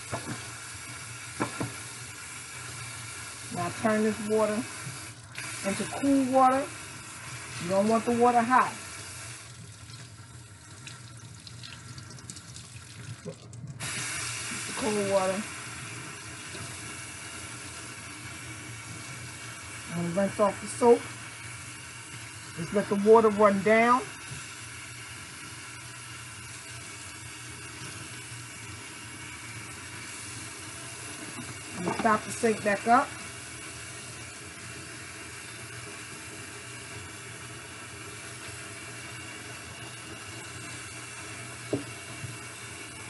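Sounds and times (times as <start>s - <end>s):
tap water running into sink: 3.4s - 42.9s.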